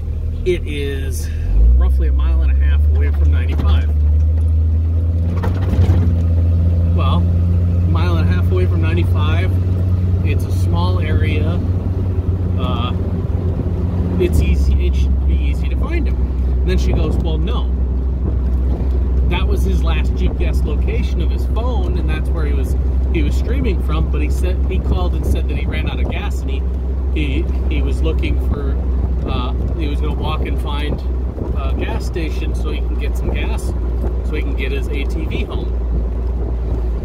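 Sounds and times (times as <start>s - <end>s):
car engine droning inside cab: 0.0s - 37.0s
person talking: 0.5s - 4.0s, 6.9s - 9.6s, 10.2s - 11.7s, 12.6s - 13.0s, 14.1s - 17.8s, 19.2s - 26.6s, 27.2s - 31.0s, 31.6s - 35.8s.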